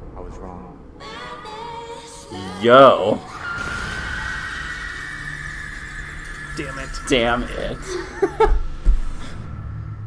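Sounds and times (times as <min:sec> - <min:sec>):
low drone: 0:03.3 - 0:10.0.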